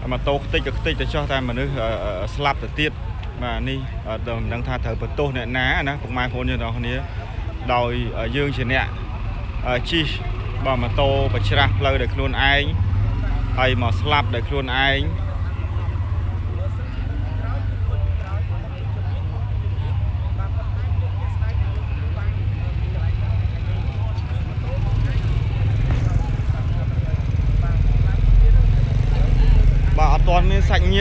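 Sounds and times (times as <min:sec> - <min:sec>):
faint indistinct voices: 0:00.0 - 0:31.0
low rumble of street noise: 0:00.0 - 0:31.0.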